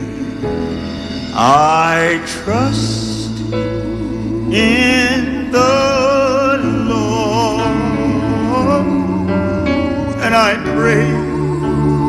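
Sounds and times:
gospel quartet singing: 0.0 - 12.0
piano accompaniment: 0.0 - 12.0.

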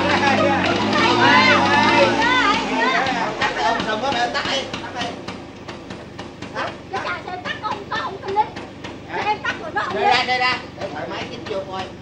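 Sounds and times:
indistinct voices: 0.0 - 5.4
scooter engine clattering: 0.0 - 12.0.

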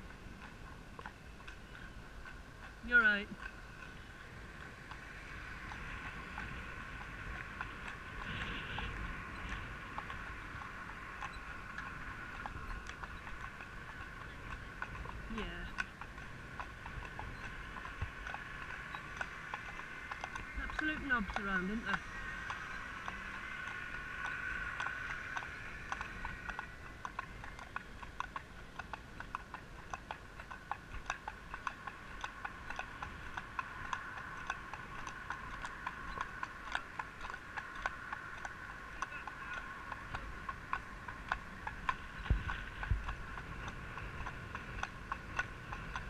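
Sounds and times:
horse hooves clip-clopping on road: 0.0 - 46.0
steady background hum: 0.0 - 46.0.

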